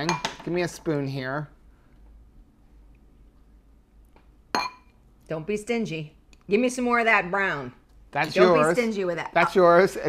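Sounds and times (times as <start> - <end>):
spoon clinking on ceramic bowl: 4.6 - 4.9.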